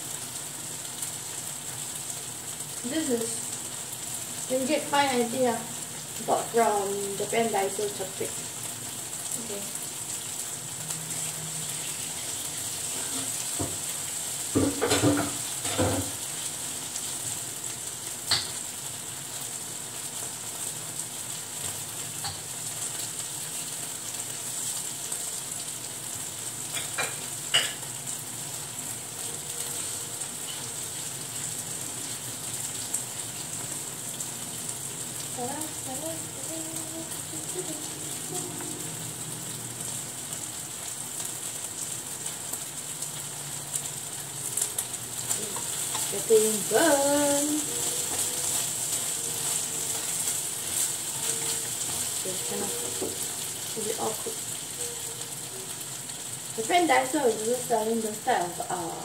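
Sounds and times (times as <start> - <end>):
food sizzling in a frying pan: 0.0 - 59.0
dishes and utensils clattering: 14.6 - 16.1.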